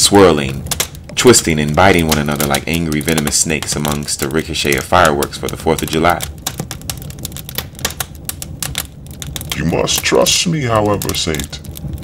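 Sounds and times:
fire crackling and popping: 0.0s - 12.0s
low steady hum: 0.0s - 12.0s.

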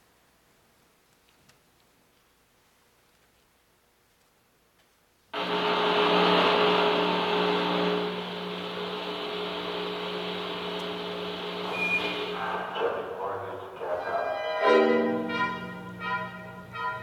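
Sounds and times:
hissing roaring electronic layer: 5.4s - 14.0s
sustained orchestral chord: 5.4s - 17.0s.

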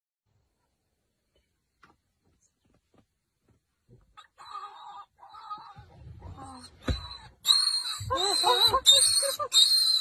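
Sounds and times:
warthog squealing: 4.3s - 10.0s
thump: 6.8s - 7.2s.

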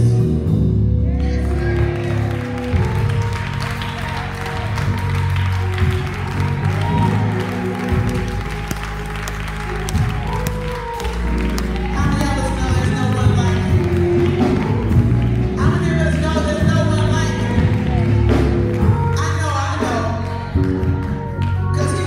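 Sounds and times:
keyboard chords over deep bass: 0.0s - 22.0s
congregation applauding: 1.1s - 22.0s.

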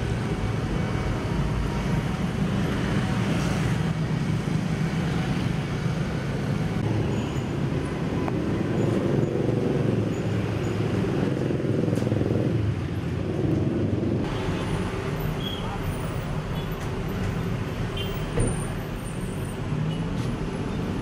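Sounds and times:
street traffic rumble: 0.0s - 21.0s.

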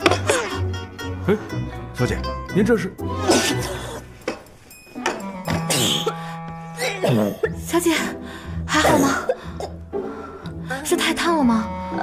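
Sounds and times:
background music: 0.0s - 12.0s
woman gagging and retching: 5.1s - 6.2s.

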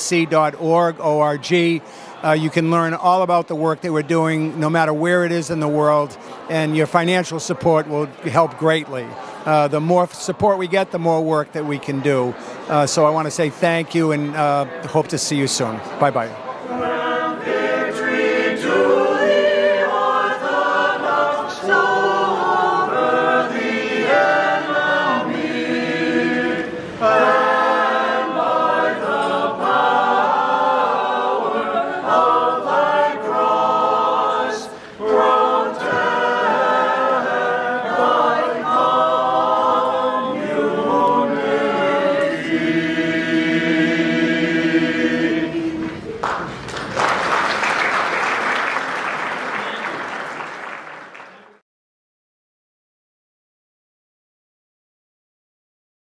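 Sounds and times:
group singing a cappella: 16.6s - 46.1s
applause: 46.2s - 51.6s.

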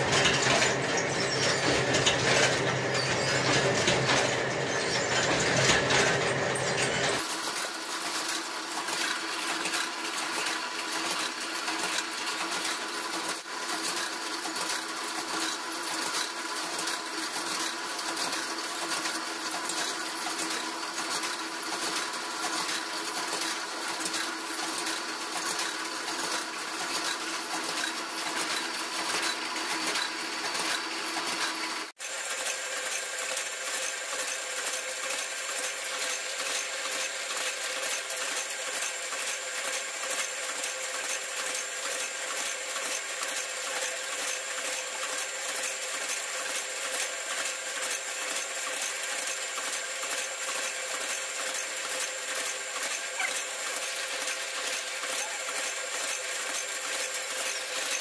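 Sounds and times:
machine running: 0.0s - 58.0s.

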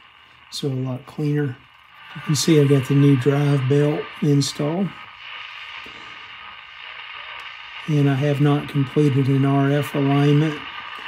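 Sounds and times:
faint hum: 0.0s - 11.0s
radio static hiss: 0.0s - 11.0s.

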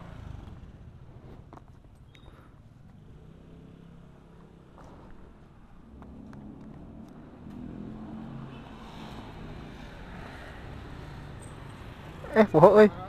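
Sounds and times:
passing street traffic hum: 0.0s - 13.0s.

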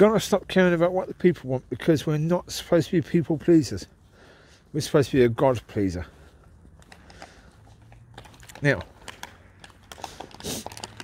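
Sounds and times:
footsteps and claws on paving: 0.0s - 11.0s.

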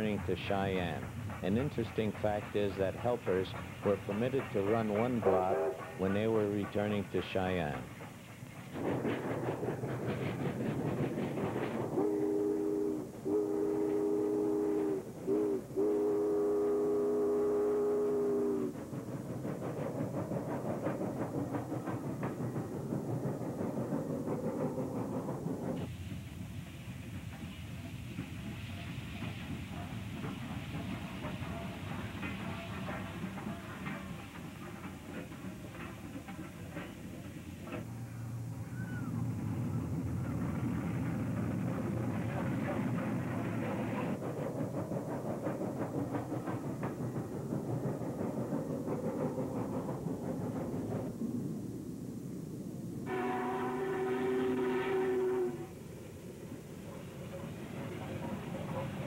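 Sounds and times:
locomotive rumble and exhaust: 0.0s - 59.0s
steam locomotive whistle blasts: 5.2s - 5.9s, 12.0s - 18.7s, 53.1s - 55.8s.

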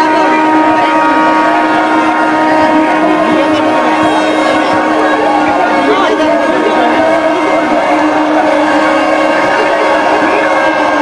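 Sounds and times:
loud steady drone: 0.0s - 11.0s.

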